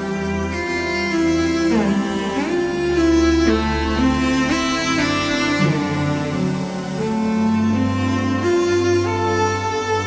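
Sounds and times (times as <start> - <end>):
sampled cello slow melody: 0.0 - 10.0.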